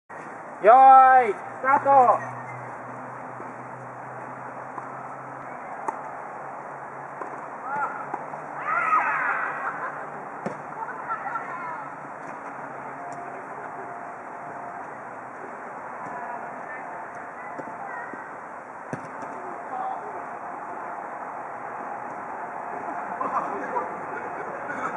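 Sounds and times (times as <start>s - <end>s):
steady background noise: 0.1s - 24.9s
players shouting: 7.6s - 10.0s
ball being kicked: 10.4s - 10.6s, 18.9s - 19.4s.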